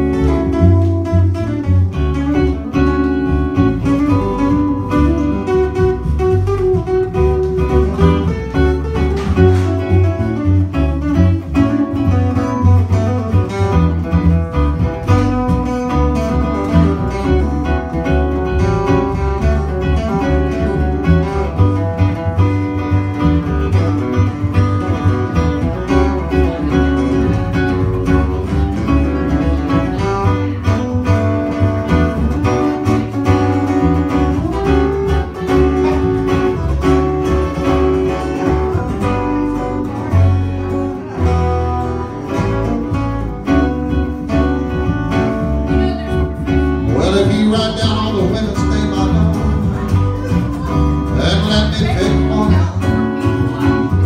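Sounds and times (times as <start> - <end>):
acoustic guitar: 0.0 - 54.0
electric guitar: 0.0 - 54.0
upright bass: 0.0 - 54.0.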